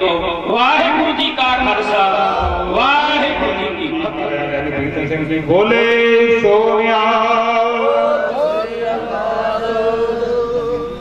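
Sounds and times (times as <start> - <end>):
man chanting through microphone: 0.0 - 11.0.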